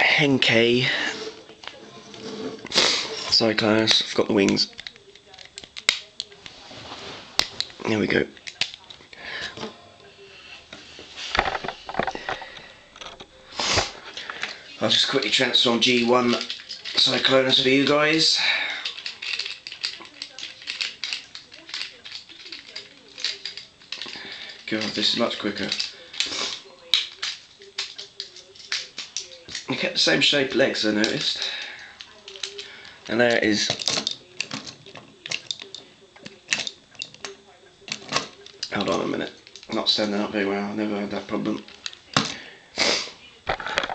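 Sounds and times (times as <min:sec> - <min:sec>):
plastic toy parts clicking: 0:04.2 - 0:06.4, 0:07.4 - 0:09.2, 0:15.2 - 0:39.9, 0:41.4 - 0:42.4.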